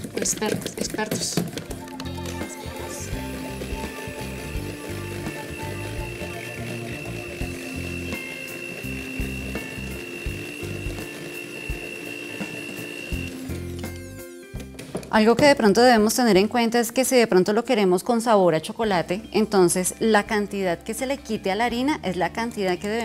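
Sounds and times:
background music with bass line: 1.6 - 16.5
electric mixer motor whine: 2.0 - 14.2.

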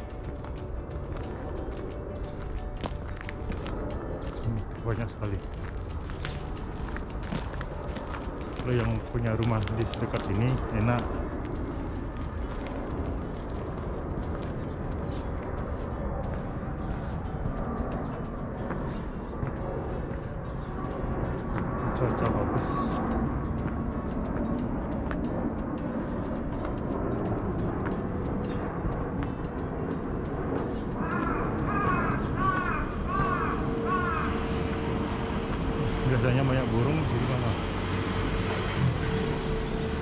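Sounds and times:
birds chirping: 0.0 - 40.0
distant city traffic: 0.0 - 40.0
wind: 0.0 - 40.0.

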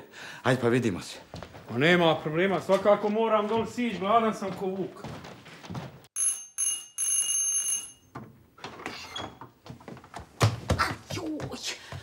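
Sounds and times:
doorbell ringing: 6.2 - 8.2.

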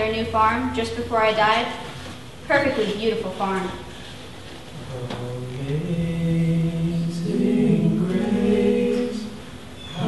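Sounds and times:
group singing a hymn a cappella: 4.8 - 10.0.

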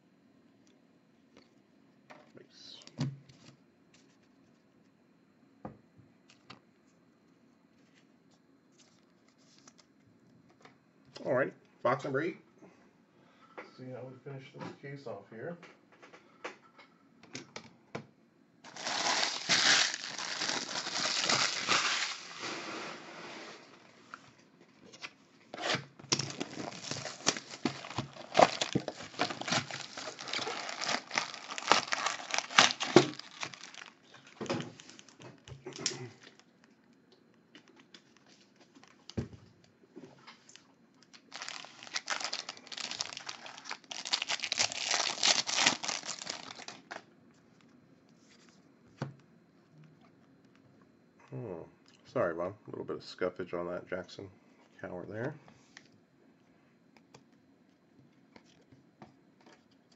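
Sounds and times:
foil packs crinkling and tearing: 18.7 - 22.6, 25.6 - 36.4, 41.1 - 47.0.

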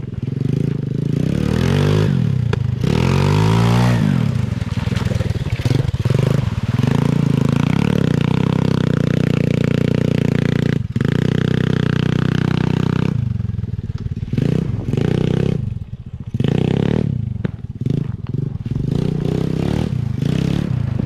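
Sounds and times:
small quad bike engine revving: 0.0 - 21.0
splashing through mud: 1.2 - 21.0.

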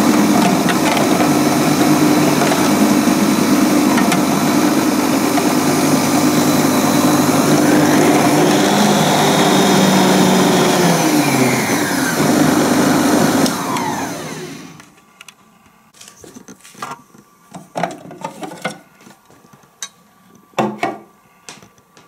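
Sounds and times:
food processor motor running: 0.0 - 14.8.

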